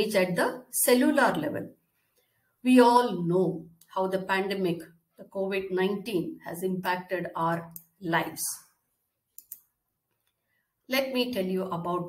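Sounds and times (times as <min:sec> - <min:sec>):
woman speaking: 0:00.0 - 0:01.7, 0:02.6 - 0:08.7, 0:10.9 - 0:12.0.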